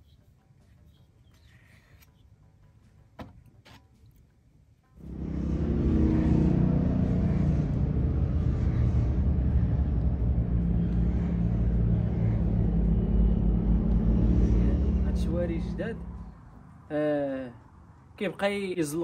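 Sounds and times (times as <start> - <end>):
off-road vehicle engines rumbling: 5.0 - 18.2.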